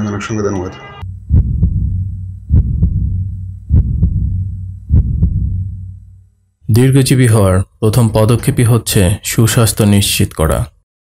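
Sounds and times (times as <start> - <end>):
heartbeat double thumps: 1.0 - 6.2
steady low hum: 1.0 - 10.2.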